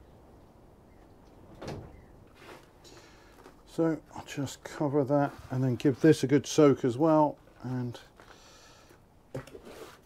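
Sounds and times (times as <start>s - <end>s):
short soft scrape: 2.3s - 2.8s, 9.6s - 10.0s
hands brushing compost: 2.3s - 8.4s.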